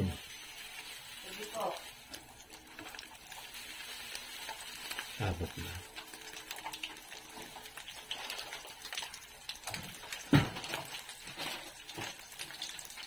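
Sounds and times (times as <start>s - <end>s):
fish sizzling in oil: 0.0s - 13.0s.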